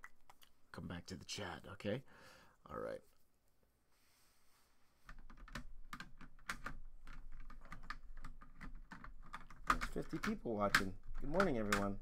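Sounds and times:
typing on computer keyboard: 5.1s - 12.0s.

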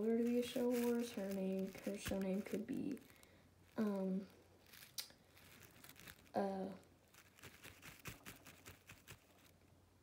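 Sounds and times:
faint ticks and rustles: 0.0s - 9.7s.

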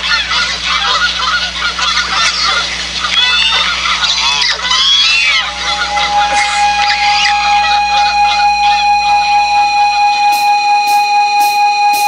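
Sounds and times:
goose honks: 0.0s - 10.6s
loud held pulsing tone: 0.0s - 12.0s
cymbal taps: 10.3s - 12.0s.

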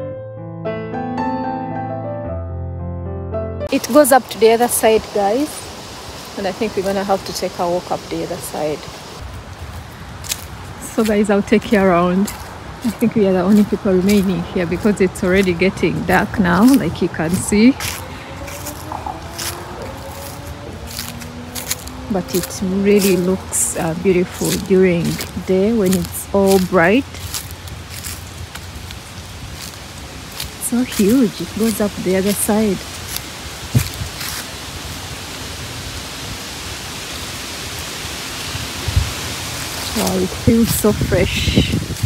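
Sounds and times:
wind buffeting microphone: 3.7s - 36.5s, 38.4s - 42.0s
footsteps through dry leaves: 3.8s - 42.0s.

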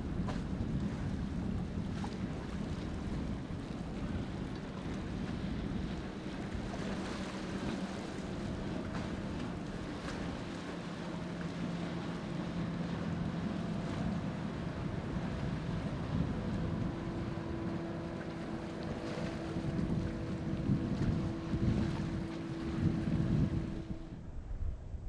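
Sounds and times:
boat engine running: 0.0s - 24.3s
wind rumbling on microphone: 0.0s - 25.0s.

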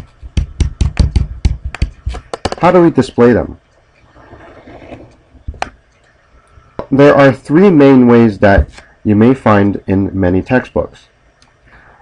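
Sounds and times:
stylus tapping on tablet screen: 0.2s - 2.7s.

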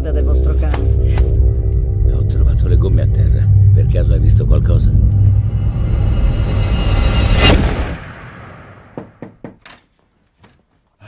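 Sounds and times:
low droning music bed: 0.0s - 7.6s
loud cinematic boom: 2.0s - 9.0s.

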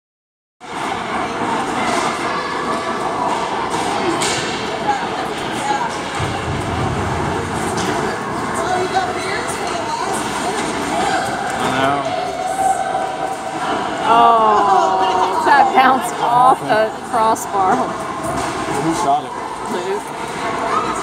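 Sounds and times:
spectator chatter: 0.6s - 21.0s
sticks and puck clacking: 2.8s - 5.0s.

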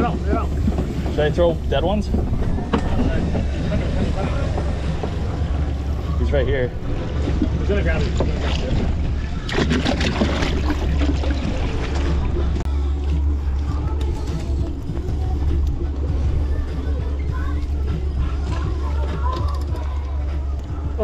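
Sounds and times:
water splashing: 0.0s - 14.6s
boat and wind rumble: 0.0s - 21.0s.

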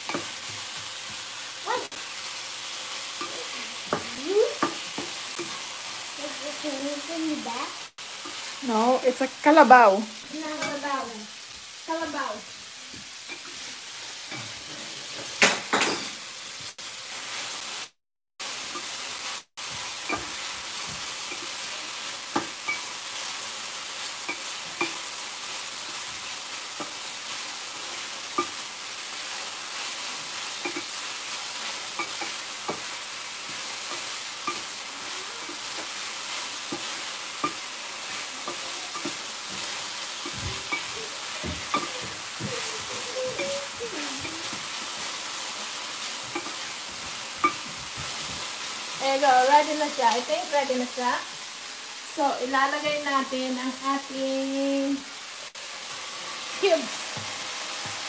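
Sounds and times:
onions sizzling in oil: 0.0s - 58.0s
wooden spatula scraping a pan: 26.8s - 50.9s.

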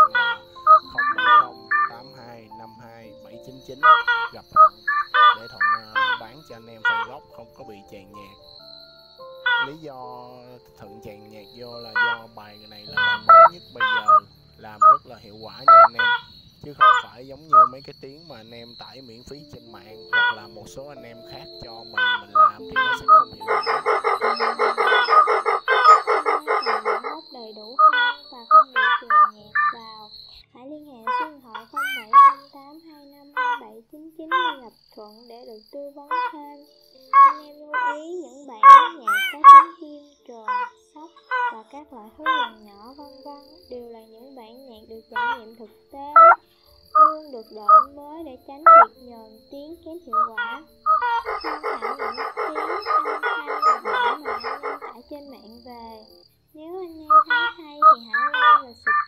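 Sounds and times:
crake calls: 0.0s - 8.7s, 9.4s - 9.9s, 11.0s - 30.4s, 31.0s - 32.6s, 36.1s - 39.8s, 40.5s - 43.8s, 44.8s - 56.2s, 56.8s - 59.0s
thin steady high tone: 0.0s - 30.5s, 36.3s - 59.0s
background music: 0.0s - 59.0s.

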